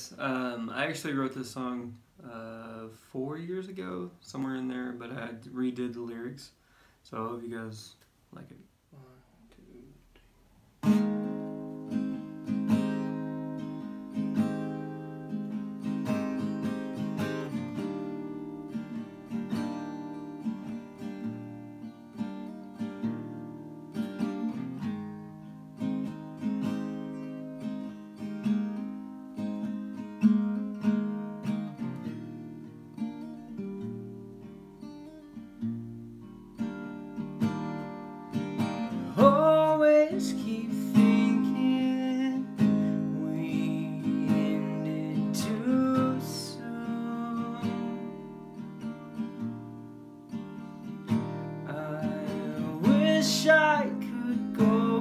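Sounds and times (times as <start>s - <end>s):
acoustic guitar picking and strumming: 0.0s - 8.0s, 10.7s - 55.0s
person singing: 38.9s - 48.2s, 51.6s - 55.0s.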